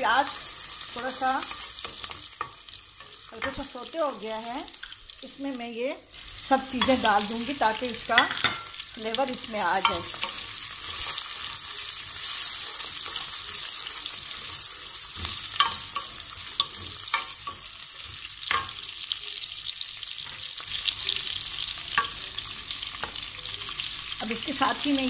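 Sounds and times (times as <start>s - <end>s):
vegetables sizzling in oil: 0.0s - 25.0s.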